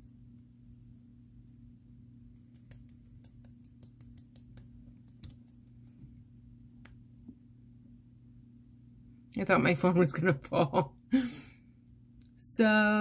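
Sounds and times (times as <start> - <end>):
low steady hum: 0.0 - 13.0
fingertips patting face: 2.3 - 5.9.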